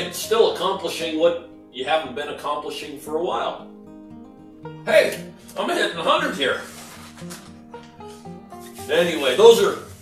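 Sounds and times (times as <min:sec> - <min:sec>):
background music single notes: 0:00.0 - 0:10.0
person speaking: 0:04.9 - 0:07.4, 0:08.8 - 0:10.0.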